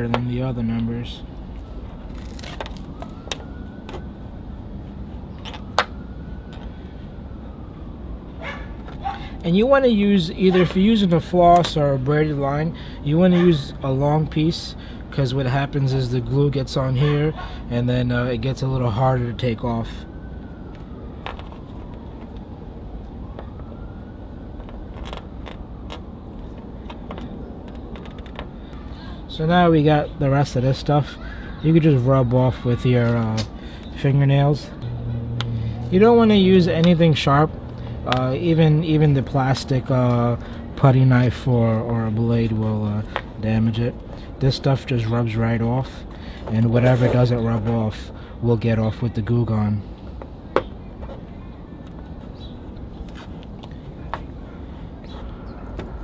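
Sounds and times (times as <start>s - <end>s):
siren wailing faintly: 0.0s - 52.9s
low traffic rumble: 0.0s - 56.0s.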